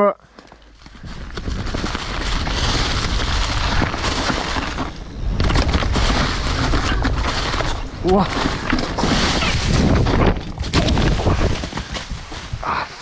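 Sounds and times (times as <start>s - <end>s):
tyres rushing through dry leaves: 0.7s - 13.0s
wind buffeting microphone: 0.7s - 13.0s.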